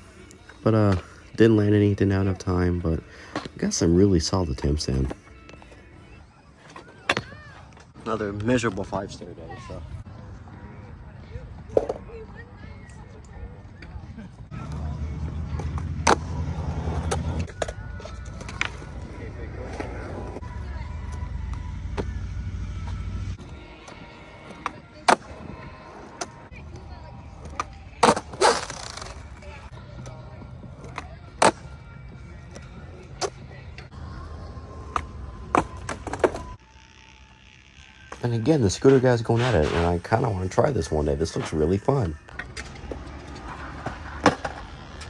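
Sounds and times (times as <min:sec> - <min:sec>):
skateboard wheels rolling on concrete: 0:00.0 - 0:45.0
skateboard clacking on ground: 0:16.9 - 0:20.4, 0:42.3 - 0:45.0.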